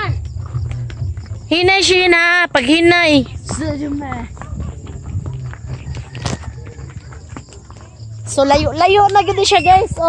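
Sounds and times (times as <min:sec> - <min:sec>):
footsteps on dirt road: 0:00.0 - 0:10.0.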